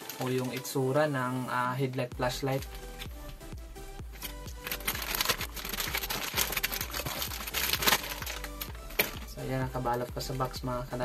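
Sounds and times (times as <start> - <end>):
plastic bag crinkling: 0.0 - 1.0, 4.1 - 9.5
background music: 0.0 - 11.0.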